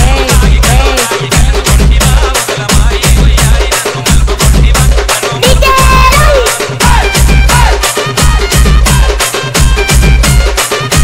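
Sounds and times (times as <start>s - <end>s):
fast drum beat: 0.0s - 11.0s
folk song dance remix: 0.0s - 11.0s.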